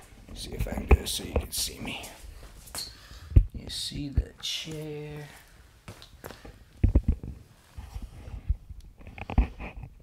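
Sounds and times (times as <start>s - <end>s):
rubbing against microphone: 6.9s - 10.0s.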